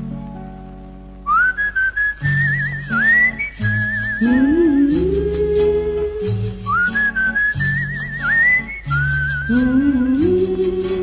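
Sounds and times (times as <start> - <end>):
shimmering percussion pattern: 2.2 - 11.0.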